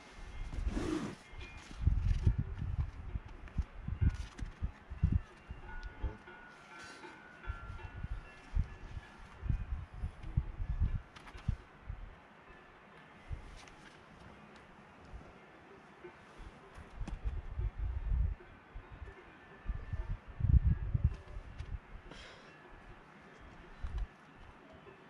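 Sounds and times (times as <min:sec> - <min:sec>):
wind buffeting microphone: 0:00.3 - 0:06.2, 0:07.4 - 0:12.2, 0:16.8 - 0:22.1.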